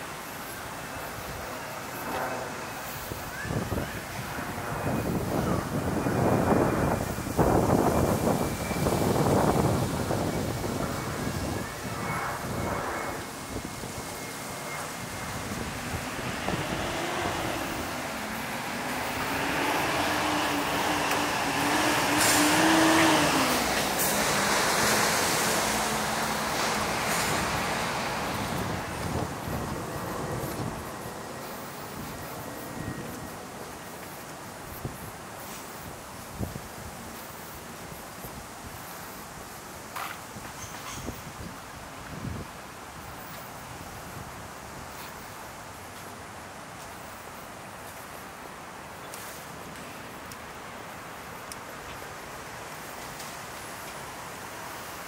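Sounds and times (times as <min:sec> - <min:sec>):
street traffic noise: 0:00.0 - 0:55.0
wind buffeting microphone: 0:01.3 - 0:37.1
vehicle passing with low hum: 0:15.1 - 0:31.2.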